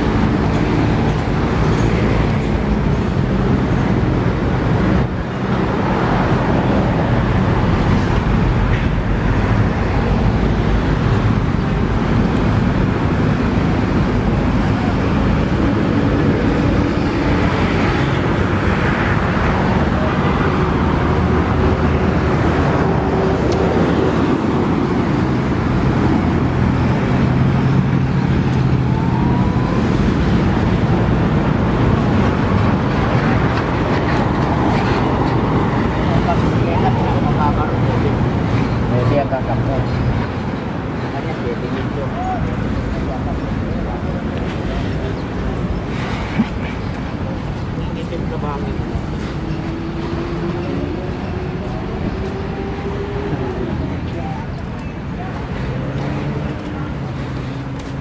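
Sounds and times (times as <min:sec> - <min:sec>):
busy road traffic: 0:00.0 - 0:58.0.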